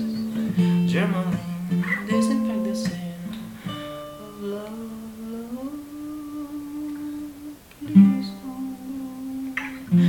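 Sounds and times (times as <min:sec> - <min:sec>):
acoustic guitar strum: 0:00.0 - 0:05.6, 0:07.8 - 0:08.7
man holding long vocal note: 0:04.1 - 0:10.0.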